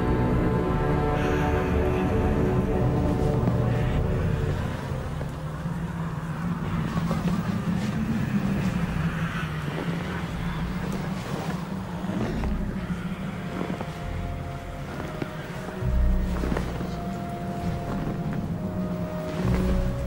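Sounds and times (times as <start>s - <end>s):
low rumbling drone: 0.0s - 20.0s.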